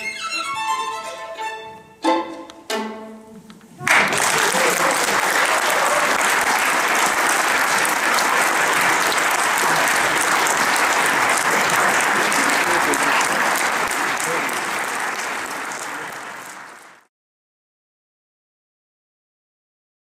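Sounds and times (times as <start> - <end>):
audience applauding: 3.8 - 17.1.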